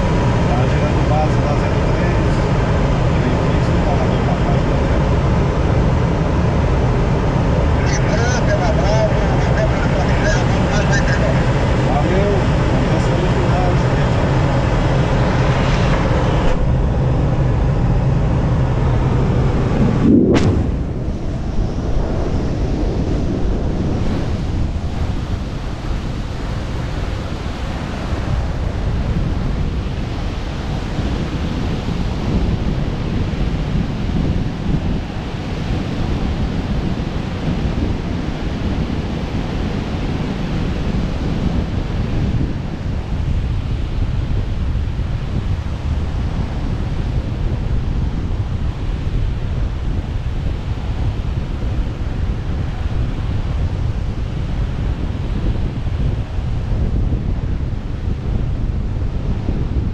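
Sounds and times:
air rushing in cockpit: 0:00.0 - 0:49.2
wind buffeting microphone: 0:00.0 - 0:59.9
low hum: 0:08.9 - 0:33.3
sharp knock: 0:20.2 - 0:20.8.

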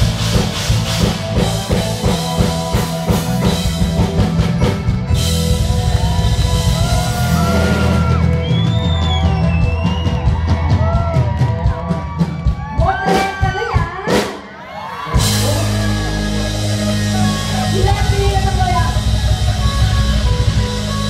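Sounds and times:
live band playing: 0:00.0 - 0:21.0.

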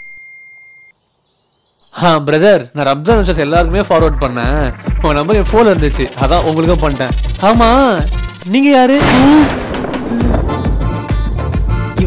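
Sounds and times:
faint high bird chirps: 0:00.0 - 0:02.4.

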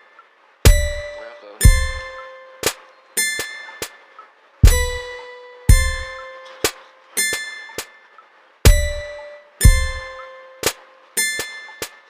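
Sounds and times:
instrumental rap beat: 0:00.0 - 0:12.0
ringing bell-like hit: 0:00.7 - 0:04.0, 0:04.6 - 0:07.9, 0:08.7 - 0:12.0
deep bass thump: 0:01.7 - 0:02.0, 0:04.6 - 0:05.0, 0:05.7 - 0:06.1.

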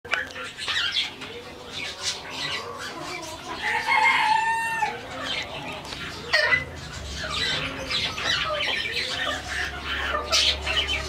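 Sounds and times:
chicken clucking: 0:00.1 - 0:11.0.

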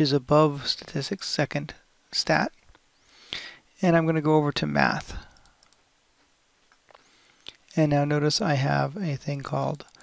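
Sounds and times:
faint computer clicks: 0:05.2 - 0:05.8, 0:09.4 - 0:10.0.

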